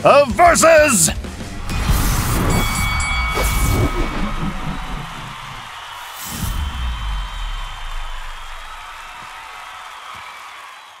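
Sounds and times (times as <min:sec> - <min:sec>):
crowd cheering: 0:00.9 - 0:11.0
low boom rumble: 0:01.2 - 0:09.1.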